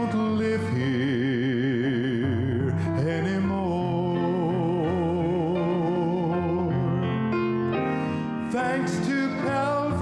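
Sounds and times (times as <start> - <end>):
man singing gospel into microphone: 0.0 - 7.2, 8.4 - 10.0
piano accompaniment: 0.0 - 10.0.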